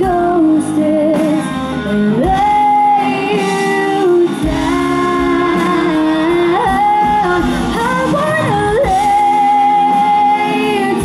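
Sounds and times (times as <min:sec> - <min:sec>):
drums: 0:00.0 - 0:11.0
guitars: 0:00.0 - 0:11.0
woman singing: 0:00.0 - 0:11.0.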